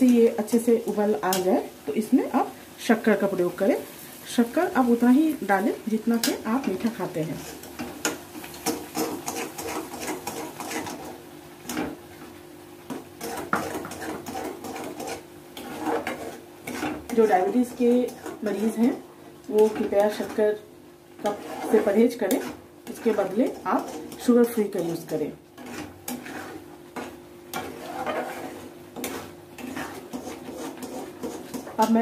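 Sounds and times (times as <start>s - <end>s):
woman speaking: 0.0s - 7.4s, 17.2s - 20.7s, 21.7s - 25.4s, 31.8s - 32.0s
spoon scraping a steel pan: 6.2s - 11.1s, 13.2s - 19.0s, 21.2s - 32.0s.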